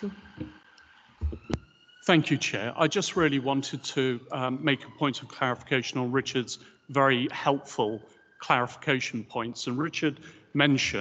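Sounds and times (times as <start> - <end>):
soft low thump: 1.2 - 1.6.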